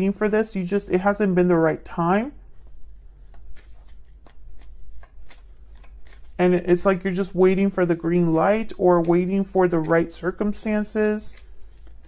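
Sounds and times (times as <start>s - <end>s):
cards being shuffled by hand: 2.4s - 12.0s.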